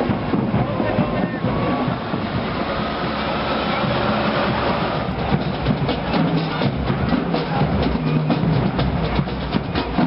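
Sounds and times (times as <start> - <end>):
street parade din: 0.0 - 10.0.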